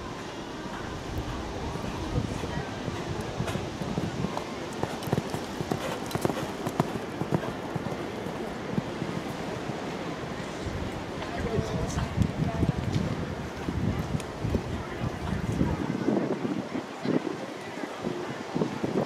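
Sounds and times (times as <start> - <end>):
hoofbeats on sand: 0.1 - 15.6.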